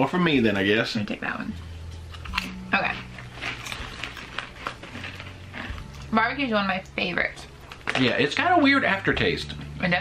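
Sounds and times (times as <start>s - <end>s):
crunching potato chips: 2.2s - 6.1s.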